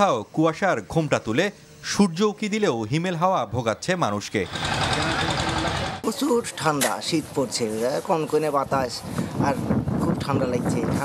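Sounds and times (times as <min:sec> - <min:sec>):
small motor running with rattle: 0:04.4 - 0:06.0.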